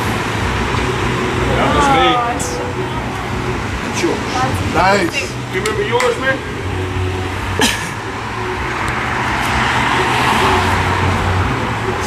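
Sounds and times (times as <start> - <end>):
car passing by: 8.1 - 12.0.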